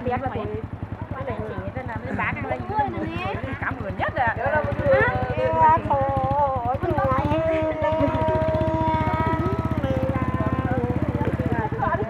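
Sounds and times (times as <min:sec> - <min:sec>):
low fast throbbing: 0:00.0 - 0:12.0.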